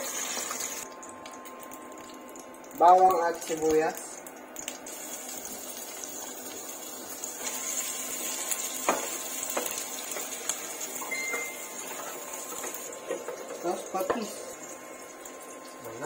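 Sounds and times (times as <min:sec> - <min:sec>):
garlic and onion sizzling in oil: 0:00.0 - 0:16.0
short high beep: 0:11.0 - 0:11.7.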